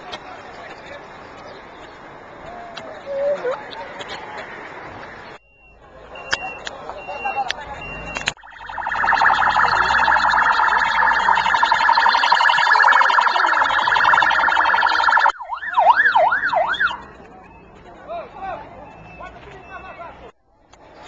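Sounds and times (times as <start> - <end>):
electronic siren pulsing and yelping: 8.0 - 17.0.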